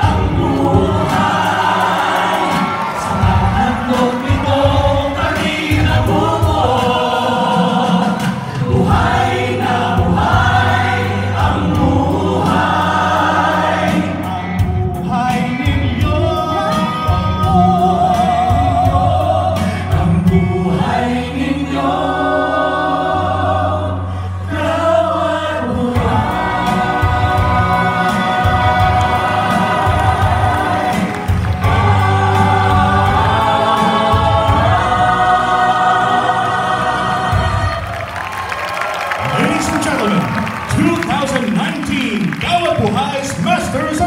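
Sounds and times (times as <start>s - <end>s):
audience applause and cheering: 0.0s - 8.3s, 26.1s - 44.0s
group singing in harmony: 0.0s - 40.9s.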